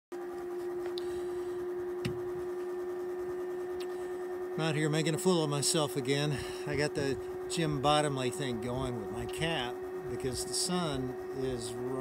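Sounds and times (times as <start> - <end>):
steady mid-pitch hum: 0.1 - 12.0.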